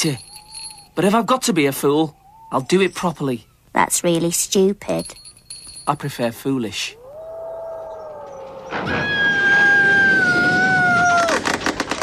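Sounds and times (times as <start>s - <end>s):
thin steady whistling tone: 0.0s - 1.0s.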